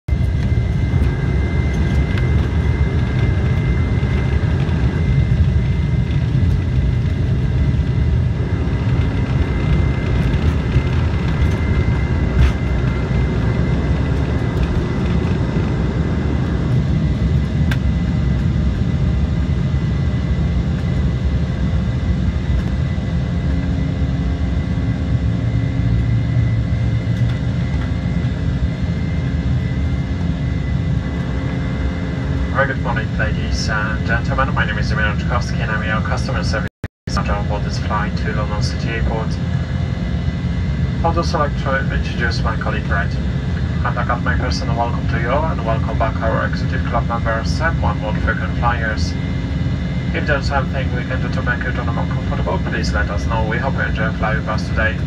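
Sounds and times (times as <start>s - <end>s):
wheels rumbling on runway: 0.1s - 34.6s
jet engines at takeoff thrust: 0.1s - 55.0s.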